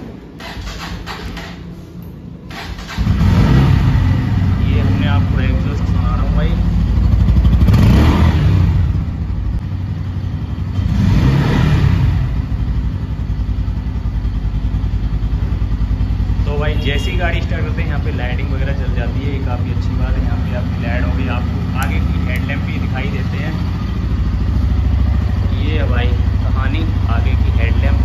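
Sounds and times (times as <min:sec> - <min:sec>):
motorcycle engine revving and idling: 0:00.0 - 0:28.0
motorcycle engine starting: 0:00.0 - 0:28.0.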